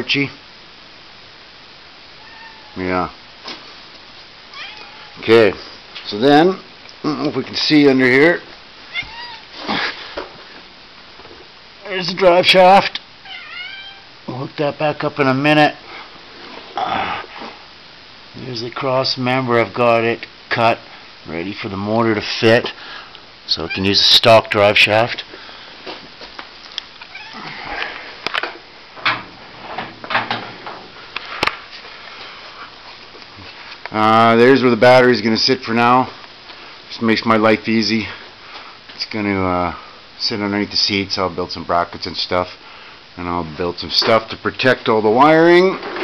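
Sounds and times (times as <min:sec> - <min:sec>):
cat meowing: 0:02.2 - 0:02.8, 0:04.5 - 0:05.2, 0:08.9 - 0:09.5, 0:13.2 - 0:14.1, 0:23.6 - 0:24.6, 0:27.0 - 0:27.6
rustling: 0:15.7 - 0:17.8.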